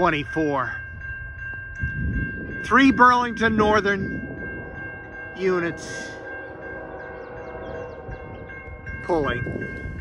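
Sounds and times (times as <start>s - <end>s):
distant train air horn: 5.7s - 8.5s.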